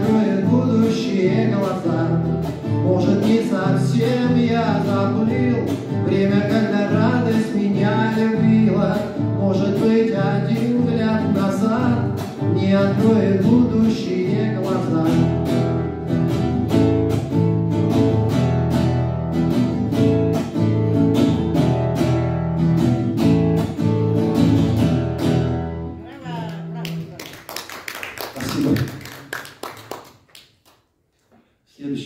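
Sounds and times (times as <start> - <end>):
acoustic guitar strumming: 0.0 - 27.2
scattered applause: 26.4 - 30.8.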